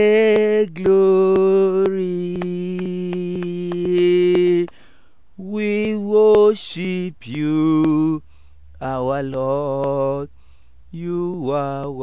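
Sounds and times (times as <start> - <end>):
hand claps: 0.0 - 4.8, 5.6 - 8.2, 8.8 - 10.2.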